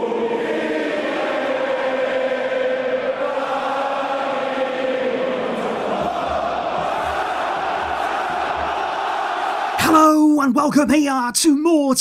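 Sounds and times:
chorus chanting held notes: 0.0s - 9.9s.

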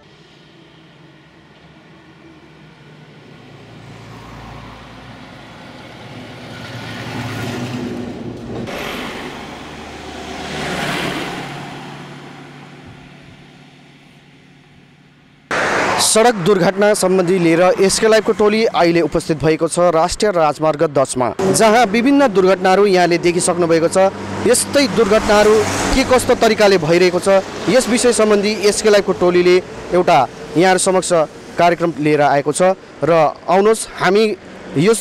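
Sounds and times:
vehicles passing: 0.0s - 35.0s.

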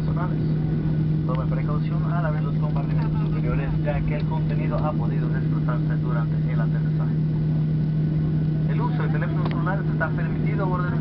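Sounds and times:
constant low hum: 0.0s - 11.0s
engine and wheel rumble: 0.0s - 11.0s
cabin announcement: 8.2s - 11.0s.

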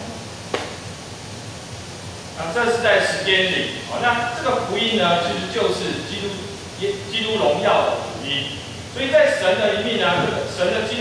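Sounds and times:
room and microphone hiss: 0.0s - 11.0s.

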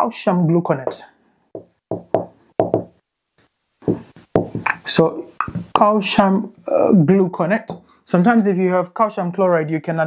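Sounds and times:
marker tapping on whiteboard: 0.8s - 3.0s, 3.8s - 4.8s, 5.4s - 5.7s.

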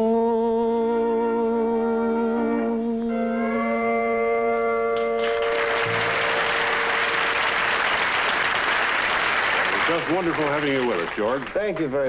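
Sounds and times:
audience applause: 5.0s - 12.0s.

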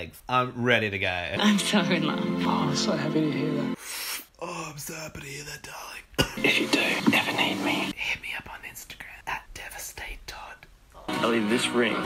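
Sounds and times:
man whispering: 4.4s - 6.3s, 7.9s - 11.1s.

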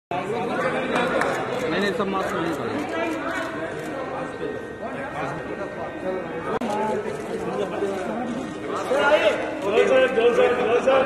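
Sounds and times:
people chattering in hall: 0.1s - 11.0s.

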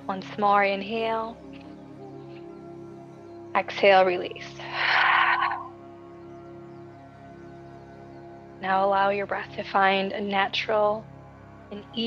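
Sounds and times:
ambient background music: 0.0s - 12.0s.

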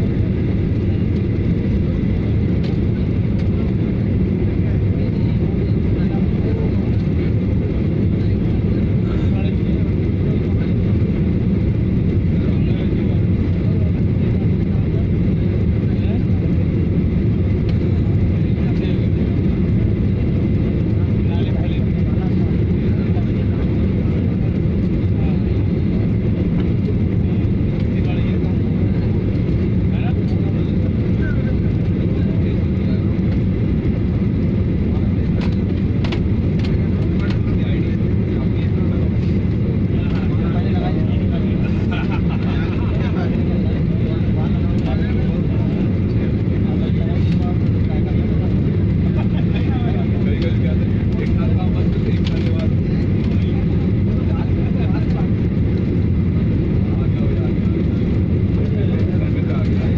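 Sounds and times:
jet engine and airflow noise: 0.0s - 59.9s.

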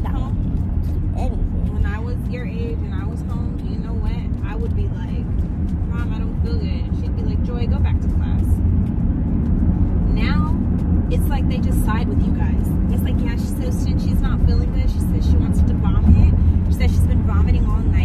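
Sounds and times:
road and tyre rumble: 0.0s - 18.0s.

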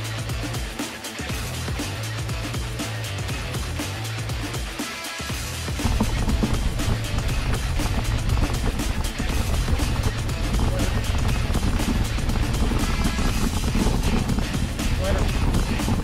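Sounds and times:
background music: 0.0s - 16.0s
wind buffeting microphone: 5.8s - 16.0s.

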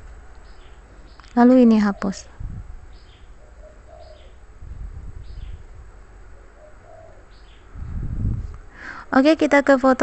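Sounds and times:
birds chirping: 0.0s - 7.8s
low bird calls: 0.4s - 4.6s, 5.2s - 7.8s.

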